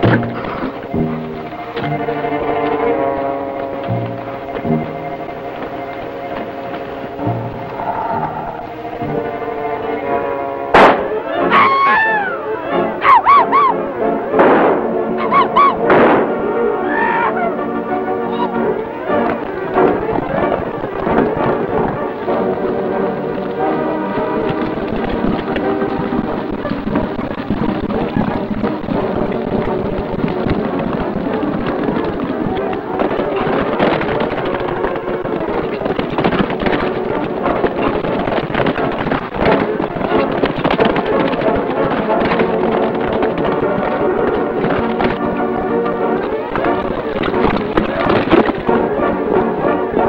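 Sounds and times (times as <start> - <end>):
dramatic film score music: 0.0 - 50.0.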